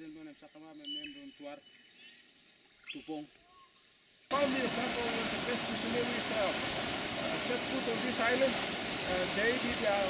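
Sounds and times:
man's voice: 4.3s - 6.6s, 7.3s - 10.0s.

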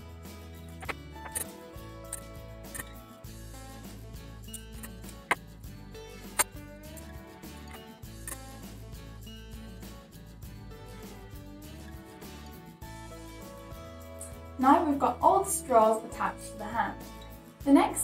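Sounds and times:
background music slow chords: 0.0s - 17.7s.

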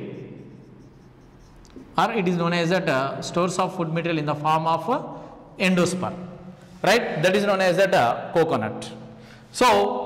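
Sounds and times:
marker writing on whiteboard: 0.0s - 2.3s.

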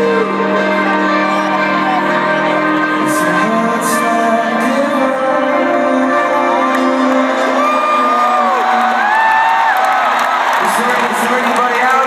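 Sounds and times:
live rock band: 0.0s - 11.4s
crowd cheering and whooping: 7.4s - 12.0s.

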